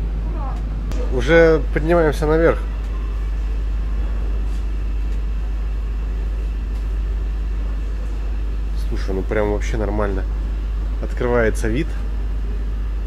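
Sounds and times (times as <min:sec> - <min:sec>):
ship engines rumbling: 0:00.0 - 0:13.0.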